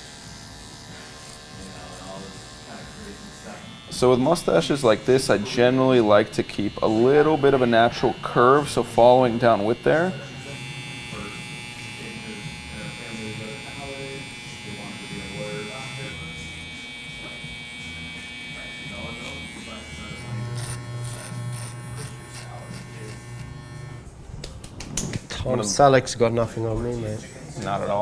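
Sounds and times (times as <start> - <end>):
hair trimmer buzzing: 0.0 - 24.1.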